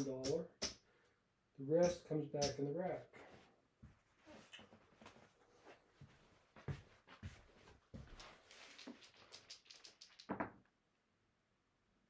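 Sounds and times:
casino chips clicking: 8.6 - 10.4.

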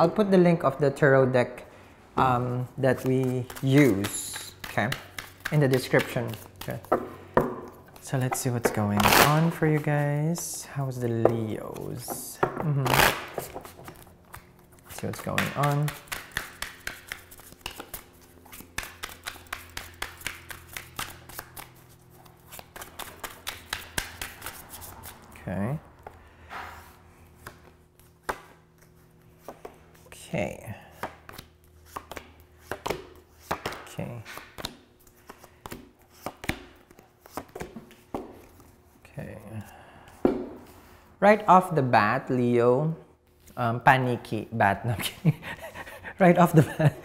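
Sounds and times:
cards being shuffled: 2.3 - 25.3, 30.9 - 40.8
card snaps and taps: 15.2 - 18.0.

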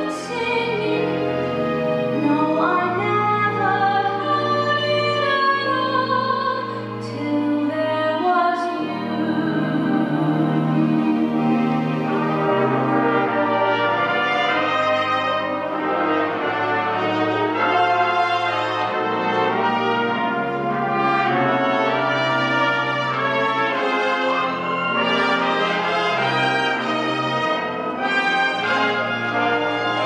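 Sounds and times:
brass sustained notes: 0.0 - 30.0.

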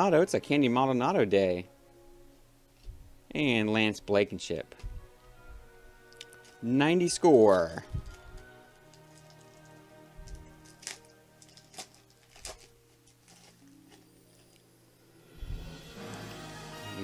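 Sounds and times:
faint background music: 0.0 - 17.0
wrapper being torn open: 8.0 - 14.5.

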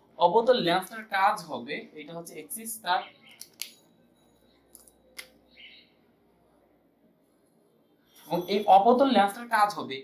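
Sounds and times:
marker squeaking on whiteboard: 2.9 - 5.9, 8.0 - 8.9
marker pen clicks: 3.2 - 3.8.

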